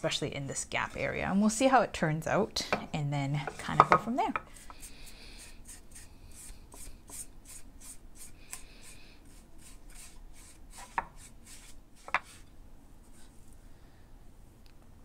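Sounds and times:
paint brush swishing strokes: 4.8 - 13.4.

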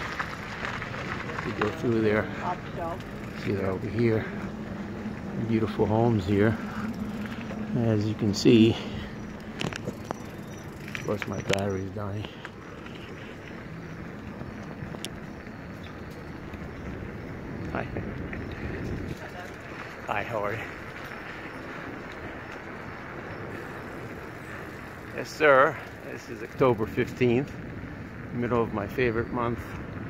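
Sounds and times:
bicycle clicks and rattles: 0.0 - 30.0
bicycle tyres rolling: 0.0 - 30.0
wind buffeting microphone: 0.0 - 30.0.

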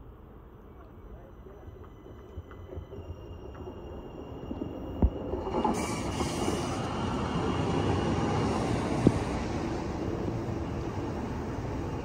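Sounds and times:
tram rumbling past: 0.2 - 12.0.

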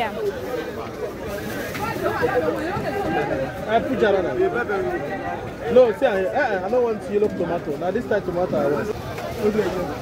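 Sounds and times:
market chatter: 0.0 - 10.0.

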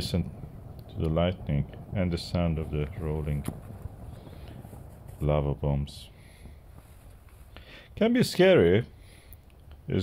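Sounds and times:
lava bombs rumbling: 0.0 - 8.2.

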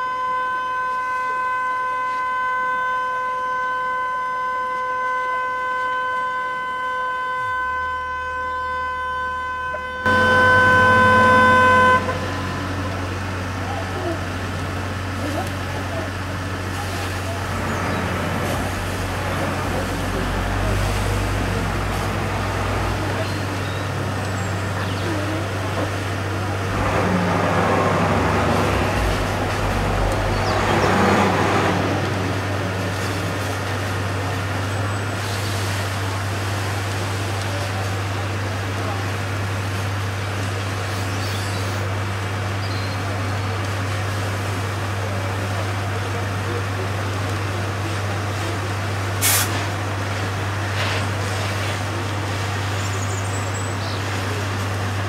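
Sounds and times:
fire truck engine running: 0.0 - 55.0.

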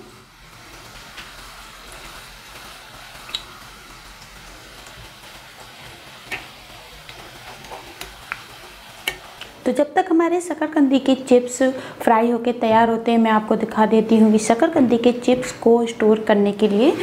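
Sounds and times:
chips sizzling in hot oil: 0.0 - 9.6.

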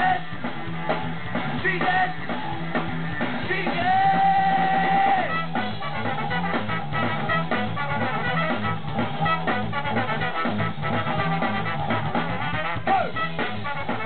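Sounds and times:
ska-rock band playing: 0.0 - 14.0.

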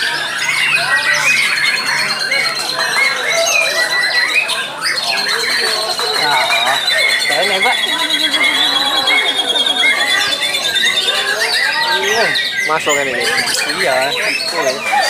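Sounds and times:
caged songbirds singing: 0.0 - 15.0.

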